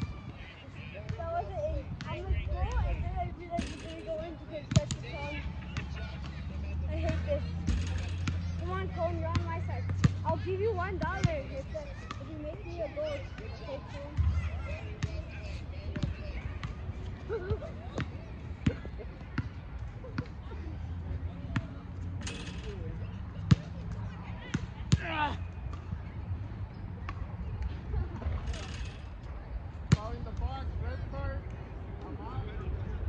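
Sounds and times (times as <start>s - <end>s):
outdoor background noise: 0.0s - 33.0s.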